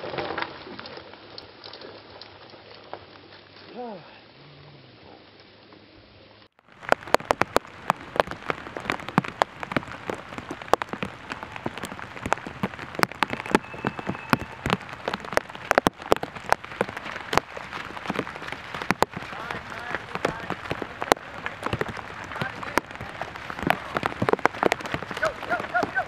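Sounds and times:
rain pattering: 0.0 - 4.3, 5.0 - 26.0
sharp raindrop hits: 6.5 - 26.0.

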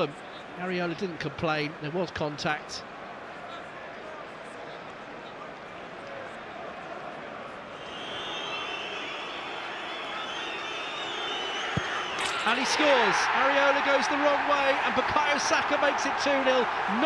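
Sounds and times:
stadium crowd noise: 0.0 - 17.0
fans whistling: 7.8 - 12.4.

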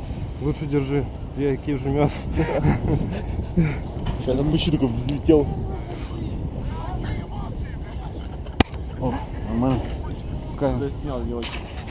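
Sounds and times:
wind rumble: 0.0 - 11.9
faint voices: 0.4 - 11.9.

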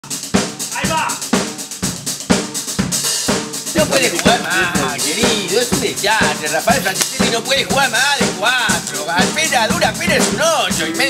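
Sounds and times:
cymbals washing: 0.0 - 11.0
drum kit beat: 0.0 - 11.0.

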